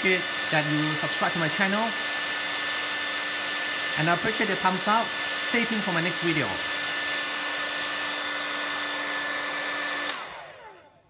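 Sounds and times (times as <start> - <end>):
hair dryer blowing with motor whine: 0.0 - 11.0
hair dryer switch click: 9.9 - 10.6.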